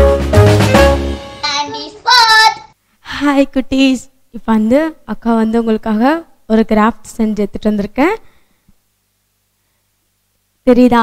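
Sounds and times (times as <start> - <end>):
music: 0.0 - 1.8.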